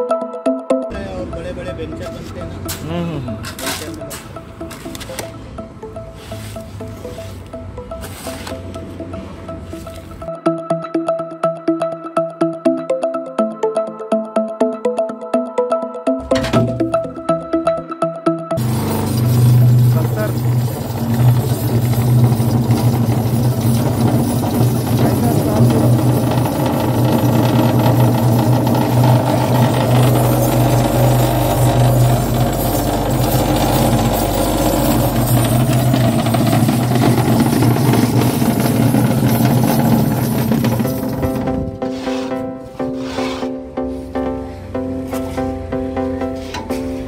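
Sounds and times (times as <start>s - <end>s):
music: 0.0s - 47.0s
vibrating table humming and rattling: 18.6s - 43.2s.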